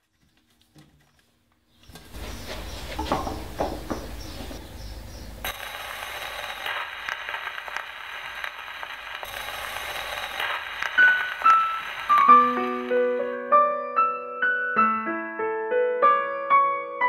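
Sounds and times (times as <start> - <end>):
record surface hiss and crackle: 4.2 - 13.4
piano notes and chords: 11.2 - 17.0.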